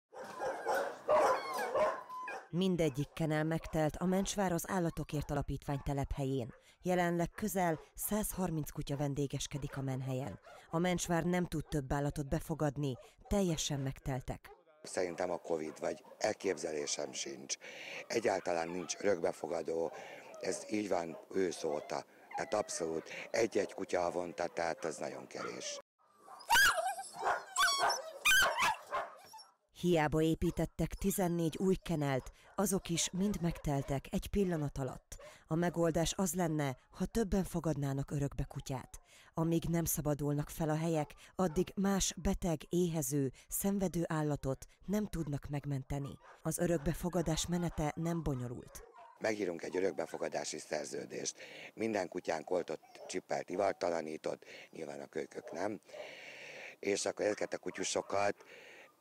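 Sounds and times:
several dogs barking: 0.1s - 3.9s, 15.0s - 29.4s, 32.2s - 35.3s, 41.0s - 41.7s, 46.0s - 50.6s, 52.1s - 53.9s, 55.2s - 56.2s, 57.1s - 58.4s.

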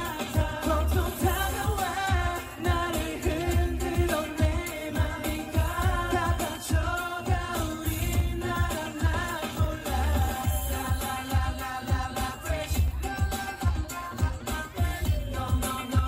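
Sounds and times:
live pop song with male vocals: 0.0s - 16.0s.

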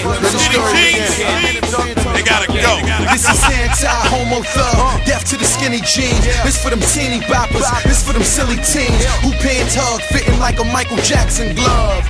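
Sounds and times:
rapping over a beat: 0.0s - 12.0s
strong bass line: 0.4s - 12.0s.

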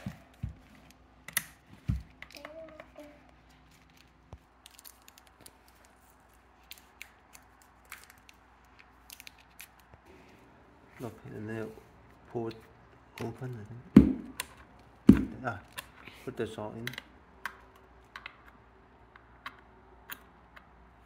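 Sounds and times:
hard plastic packaging crinkling: 3.4s - 10.0s.

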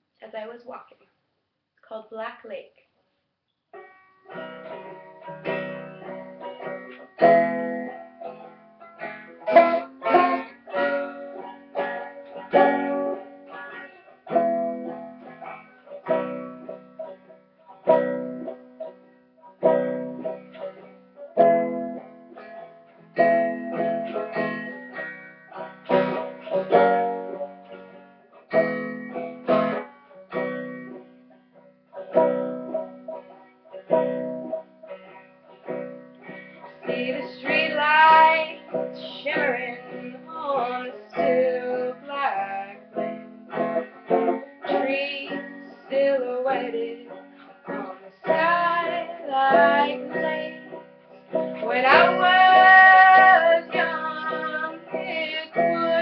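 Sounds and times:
plucked string chords: 4.3s - 56.0s.

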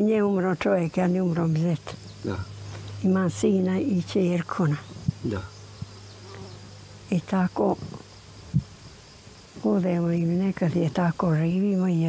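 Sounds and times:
faint low buzz: 0.0s - 12.0s.

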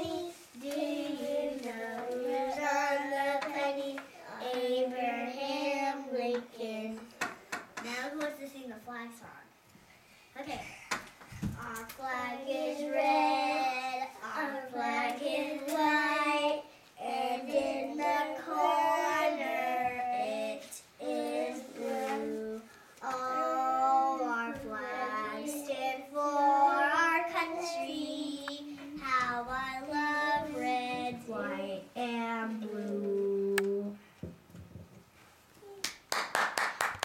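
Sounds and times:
girls singing unaccompanied: 0.0s - 7.2s, 11.6s - 34.0s.

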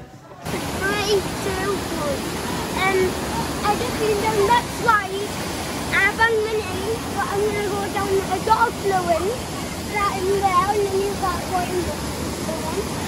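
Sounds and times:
running pool water: 0.0s - 13.0s.

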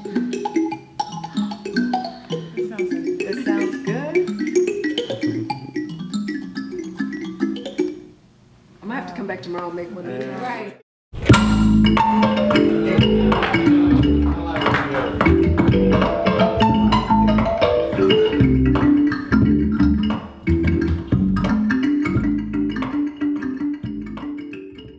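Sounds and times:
kalimba music: 0.0s - 8.2s, 11.3s - 24.9s.

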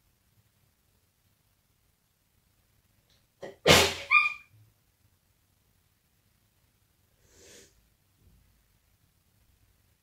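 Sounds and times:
loud sneeze: 3.6s - 4.4s.

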